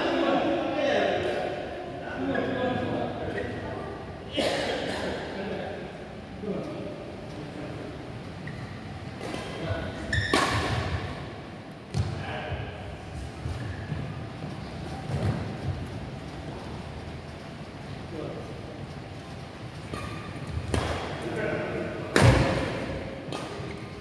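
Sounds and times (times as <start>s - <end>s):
rackets hitting shuttlecock: 10.2s - 11.2s, 19.8s - 21.3s, 22.1s - 23.9s.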